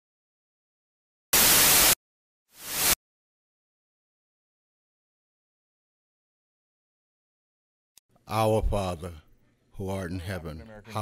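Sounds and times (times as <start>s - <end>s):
static hiss bursts: 1.4s - 3.0s.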